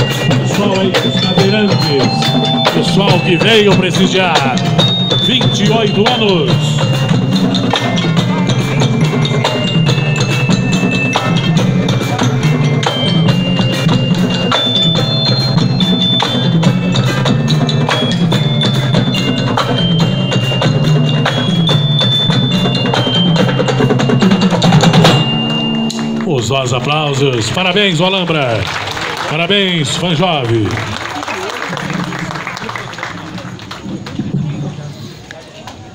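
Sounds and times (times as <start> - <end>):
marimba and glockenspiel tune: 0.0 - 28.5
marching drums: 0.0 - 34.7
timpani: 12.4 - 27.8.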